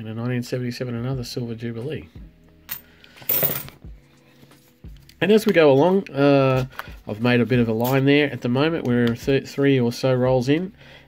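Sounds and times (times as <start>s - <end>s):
coins clinking: 2.7s - 3.8s.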